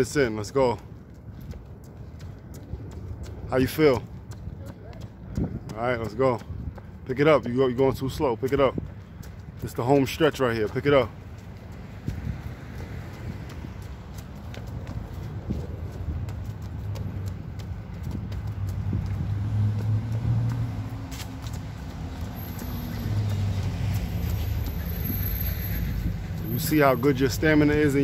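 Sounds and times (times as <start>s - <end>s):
running footsteps on concrete: 0.0s - 28.0s
low vehicle hum: 11.1s - 27.7s.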